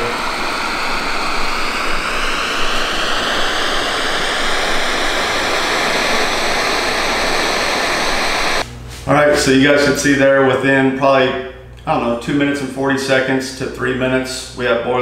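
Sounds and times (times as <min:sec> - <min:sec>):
stove burner hissing: 0:00.0 - 0:08.7.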